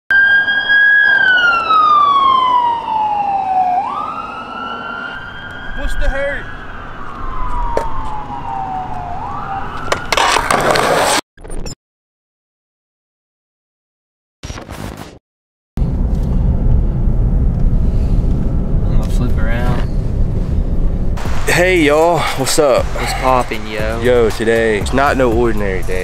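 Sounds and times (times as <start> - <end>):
ambulance siren wailing: 0.1 - 10.6, 22.2 - 25.2
loud rushing noise: 15.8 - 25.2.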